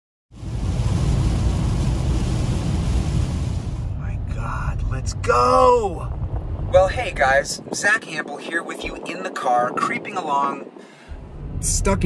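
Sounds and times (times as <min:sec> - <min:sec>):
heavy rain on car: 0:00.4 - 0:04.3
tyres on wet road: 0:00.4 - 0:07.4.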